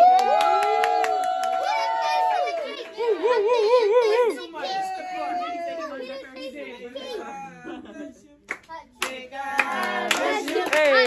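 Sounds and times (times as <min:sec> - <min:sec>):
people talking and laughing: 0:01.7 - 0:08.5
hand claps: 0:08.5 - 0:11.0.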